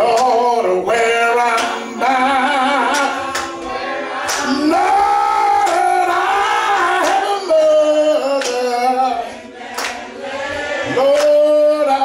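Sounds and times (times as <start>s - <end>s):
person singing: 0.0s - 9.4s.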